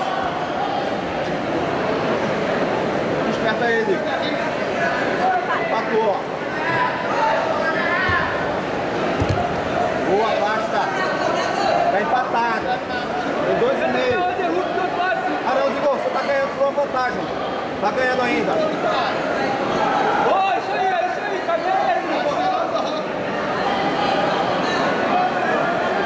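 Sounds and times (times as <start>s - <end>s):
crowd chatter in a hall: 0.0s - 26.0s
low thump: 9.2s - 9.6s.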